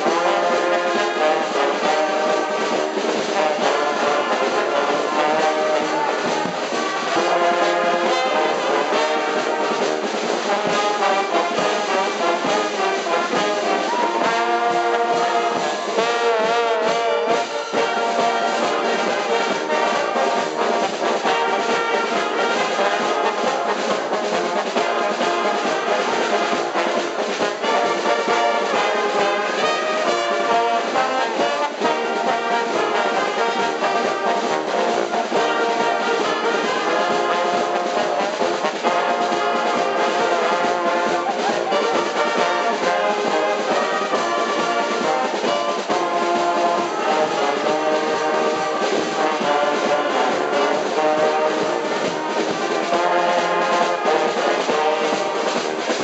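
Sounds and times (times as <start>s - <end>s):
brass band playing: 0.0s - 56.0s.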